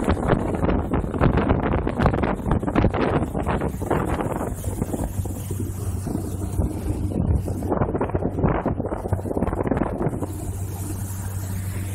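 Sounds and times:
boat engine droning: 0.0 - 11.9
wind buffeting microphone: 0.0 - 11.9.

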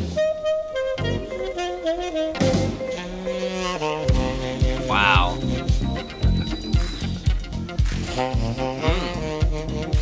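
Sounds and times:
bass: 0.0 - 0.4, 1.0 - 1.5, 2.4 - 3.0, 4.0 - 10.0
drums: 0.0 - 0.4, 1.0 - 10.0
saxophone playing held notes: 0.0 - 6.7, 7.3 - 10.0.

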